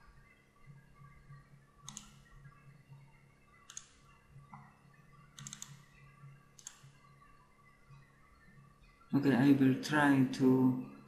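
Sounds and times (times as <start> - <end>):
faint low hum: 0.0 - 11.0
computer mouse clicks: 1.8 - 2.3, 3.6 - 6.0, 6.6 - 7.0.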